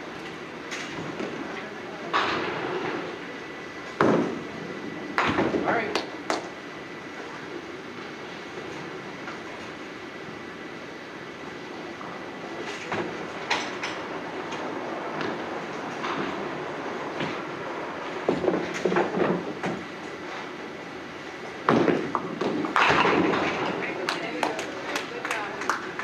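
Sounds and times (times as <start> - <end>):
bowling balls rolling: 21.6 - 26.0.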